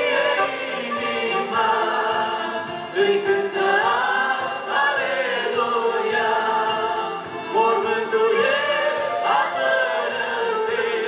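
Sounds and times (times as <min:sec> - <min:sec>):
group singing gospel song: 0:00.0 - 0:11.0
instrumental accompaniment with beat: 0:00.0 - 0:11.0.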